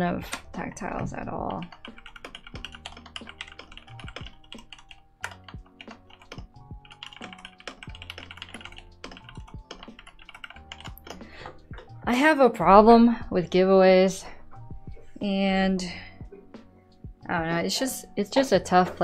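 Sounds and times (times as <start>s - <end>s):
quiet background music: 0.0s - 19.0s
mechanical keyboard typing: 1.5s - 11.2s.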